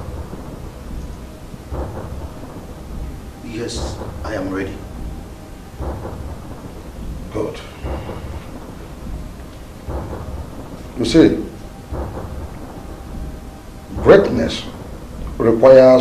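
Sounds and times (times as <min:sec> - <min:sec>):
thunder rumble: 0:00.0 - 0:16.0.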